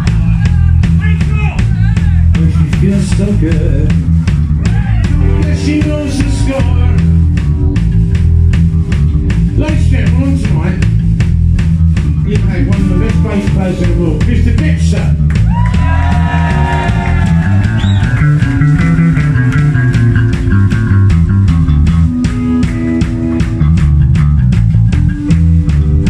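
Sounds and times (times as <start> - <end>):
punk rock band playing: 0.0 - 26.0.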